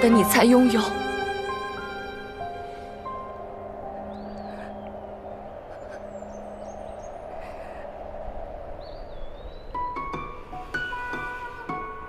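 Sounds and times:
wind: 0.0 - 12.0
gliding bird calls: 3.0 - 11.8.

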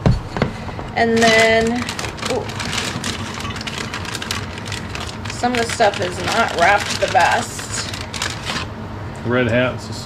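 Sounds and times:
paper and plastic bag rustling: 1.1 - 8.7.

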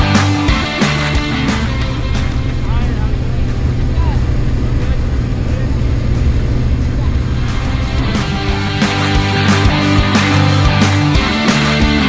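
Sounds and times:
rock music: 0.0 - 12.0
plane engine and propeller drone: 1.2 - 10.4
rushing air: 1.3 - 10.7.

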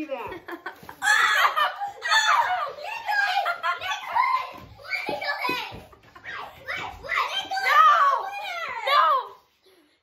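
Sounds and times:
children's voices: 0.0 - 10.0.

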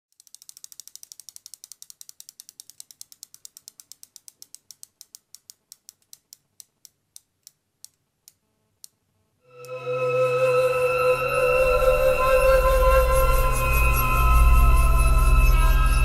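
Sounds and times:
bicycle freehub ratcheting: 0.1 - 6.9.

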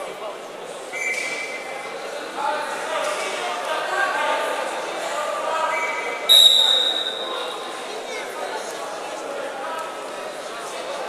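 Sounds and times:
voices chattering in a hall: 0.0 - 11.0
referee's whistle: 0.9 - 1.6, 5.7 - 7.5.

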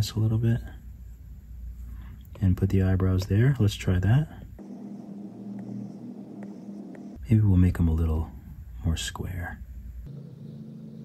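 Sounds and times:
low electrical hum: 0.0 - 11.0
stylus tapping a screen: 4.6 - 7.2.

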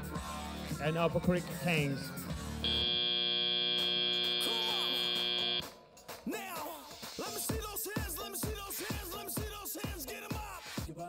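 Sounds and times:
loud buzzer tone: 2.6 - 5.6.

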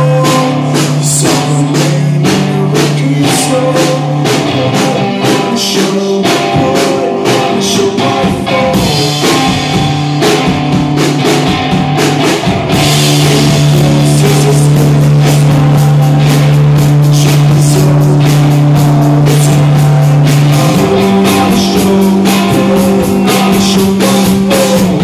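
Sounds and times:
drums and cymbals: 0.0 - 25.0
live rock band playing: 0.0 - 25.0.

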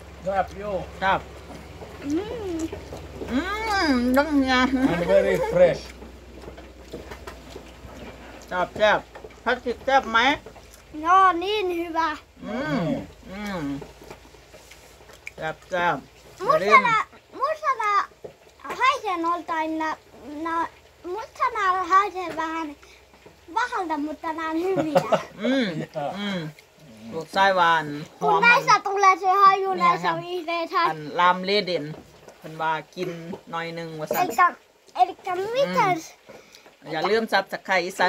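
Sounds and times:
woman humming mmm: 2.0 - 4.1, 12.4 - 13.8.

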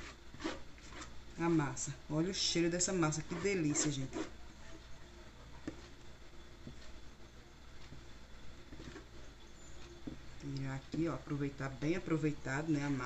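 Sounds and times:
metal spoon scraping batter: 0.0 - 1.8, 2.8 - 4.4.

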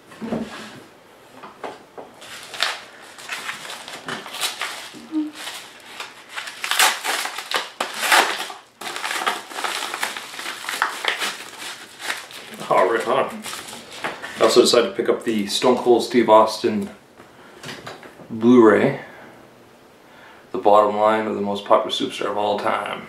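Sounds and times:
paper envelope crinkling and ripping: 2.2 - 14.7.

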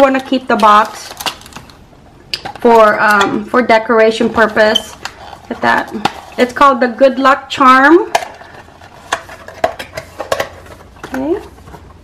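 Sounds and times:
cellophane crinkling: 0.0 - 1.8.

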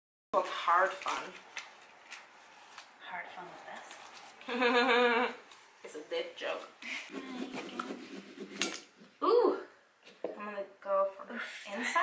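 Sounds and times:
carving tools scraping pumpkin: 7.0 - 9.0.

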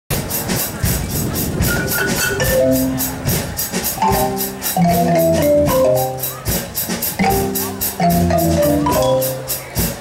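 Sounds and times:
marimba and drum band playing: 0.1 - 10.0
high-pitched percussion strokes: 0.2 - 10.0
short high marimba note: 1.7 - 9.9.

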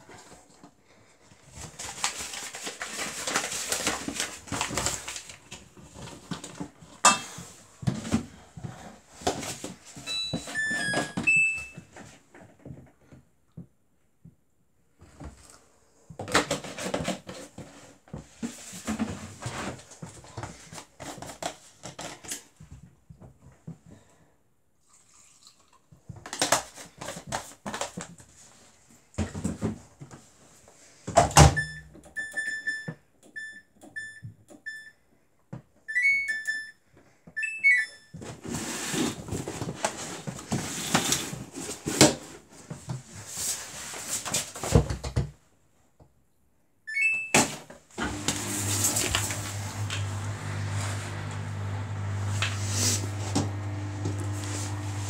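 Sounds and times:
control panel beeps: 31.6 - 34.9, 35.9 - 36.8, 37.4 - 38.1, 46.9 - 47.4
washing machine low hum: 48.0 - 55.0.

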